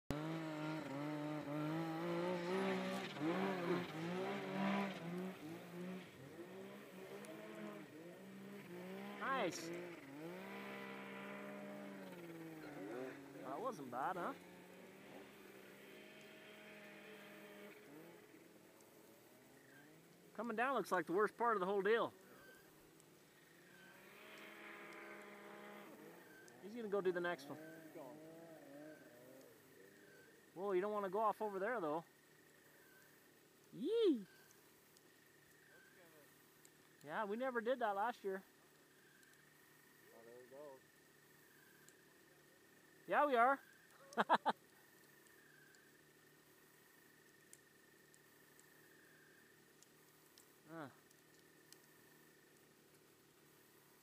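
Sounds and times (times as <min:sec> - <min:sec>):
snowmobile engines idling: 0:00.1 - 0:34.5, 0:35.1 - 0:54.0
man speaking: 0:09.2 - 0:09.8, 0:13.4 - 0:14.4, 0:20.3 - 0:22.1, 0:26.6 - 0:28.2, 0:33.8 - 0:34.3, 0:43.1 - 0:43.6.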